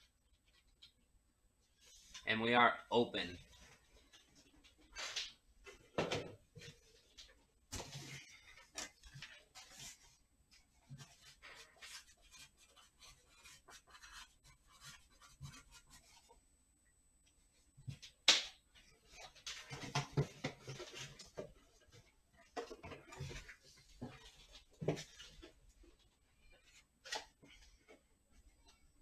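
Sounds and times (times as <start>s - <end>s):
objects handled on a desk: 18.8s - 28.9s.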